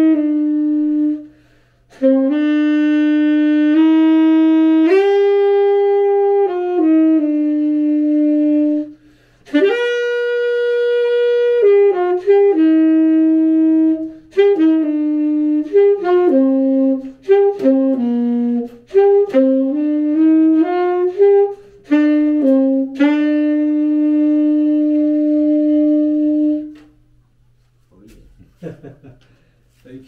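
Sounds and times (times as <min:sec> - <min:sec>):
solo saxophone: 0:00.0 - 0:27.7.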